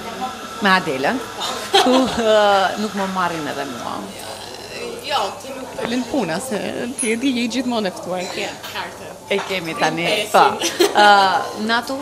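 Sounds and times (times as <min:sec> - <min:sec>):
woman laughing: 0:01.4 - 0:02.6, 0:10.5 - 0:11.5.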